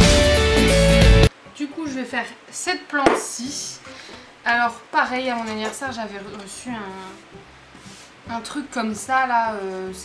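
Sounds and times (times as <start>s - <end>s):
flowerpot knocking on table: 3.0s - 3.3s.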